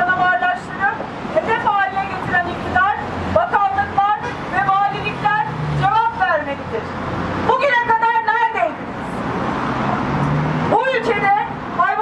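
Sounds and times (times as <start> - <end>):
woman speaking through a megaphone: 0.0 - 8.9, 10.7 - 12.0.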